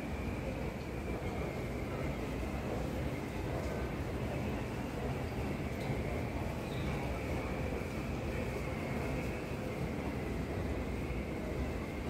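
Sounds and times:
low rumbling background noise: 0:00.0 - 0:12.0.

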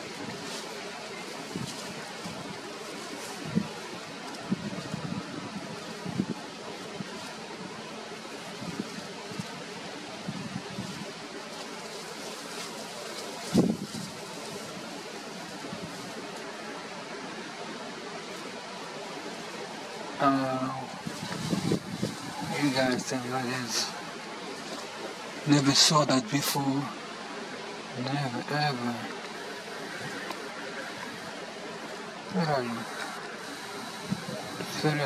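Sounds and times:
outdoor background noise: 0:00.0 - 0:35.0.

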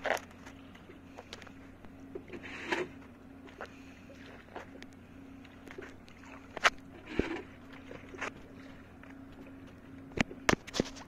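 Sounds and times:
boat engine humming: 0:00.0 - 0:11.0
water slapping against hull: 0:00.0 - 0:11.0.

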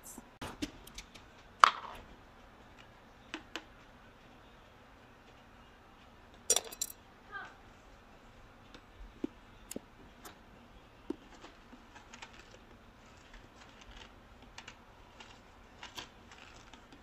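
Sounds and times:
metal and glass clinks: 0:06.5 - 0:07.0.

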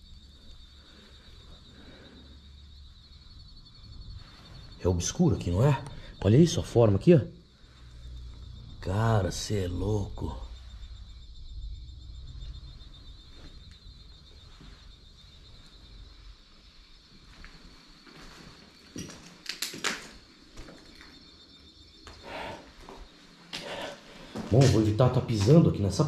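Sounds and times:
footsteps on floor: 0:17.2 - 0:21.2, 0:22.0 - 0:25.6.

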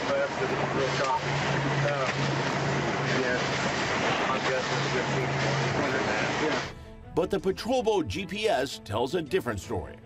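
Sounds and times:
low motor hum: 0:00.0 - 0:06.7
man talking: 0:04.2 - 0:10.0.

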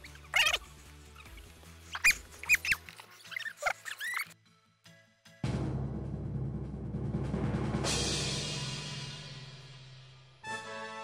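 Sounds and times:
quiet background music: 0:00.0 - 0:06.0
high-pitched squeaky glides: 0:01.2 - 0:04.4.

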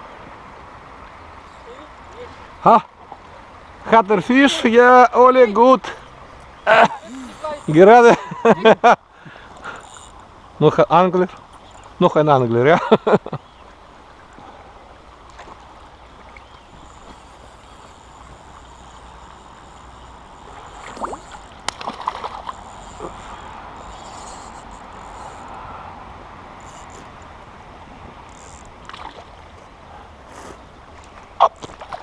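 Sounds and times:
water sloshing and splashing: 0:13.7 - 0:30.0, 0:30.8 - 0:32.0.

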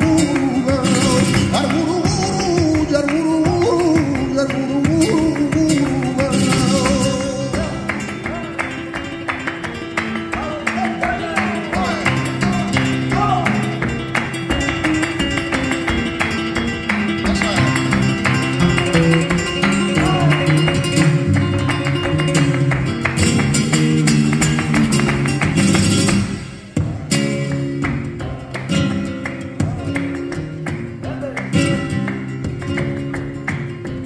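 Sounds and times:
flamenco guitar playing: 0:00.0 - 0:34.0
rhythmic hand clapping: 0:00.0 - 0:34.0.

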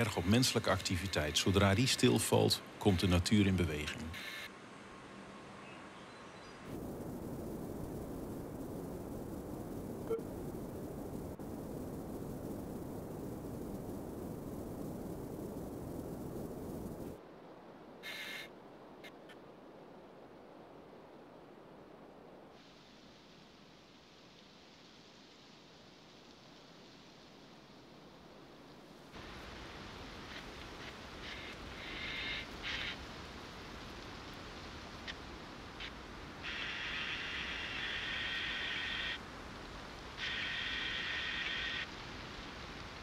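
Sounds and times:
faint hiss: 0:00.0 - 0:43.0.

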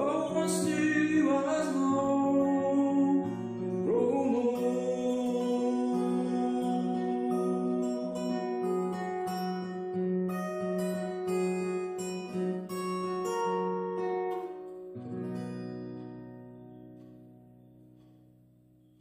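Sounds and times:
fingerpicked acoustic guitar: 0:00.0 - 0:19.0
low guitar chord ringing: 0:00.0 - 0:19.0.

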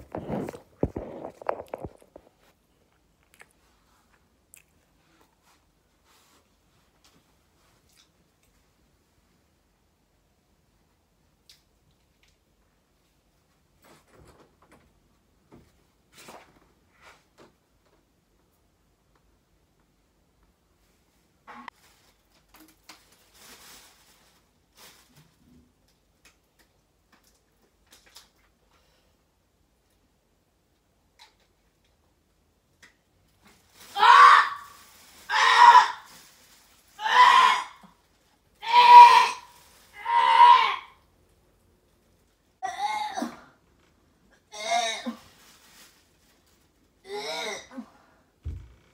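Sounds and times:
woman retching: 0:00.0 - 0:02.2, 0:47.1 - 0:47.9.

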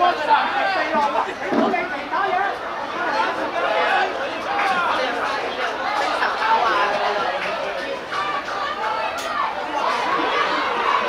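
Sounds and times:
overlapping voices chattering: 0:00.0 - 0:11.0.

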